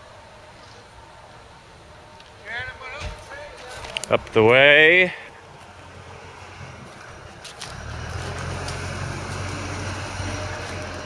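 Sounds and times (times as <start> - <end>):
footsteps through dry stubble: 3.1 - 4.7, 5.4 - 11.0.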